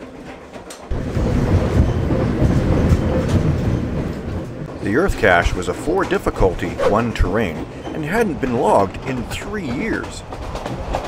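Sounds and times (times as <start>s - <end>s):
train rumbling on rails: 0.0s - 11.0s
train track noise: 0.0s - 11.0s.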